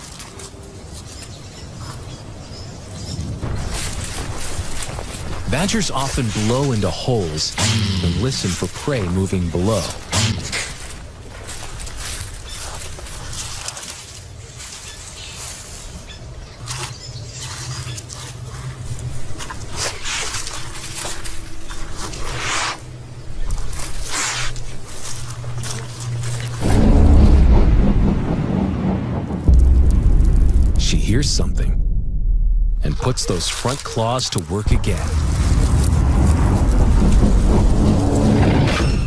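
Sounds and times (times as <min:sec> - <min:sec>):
low steady drone: 0:17.2 - 0:39.0
animal sniffing and blowing: 0:17.4 - 0:22.9, 0:23.8 - 0:26.6
loud low rumble: 0:26.0 - 0:33.9, 0:34.6 - 0:39.0.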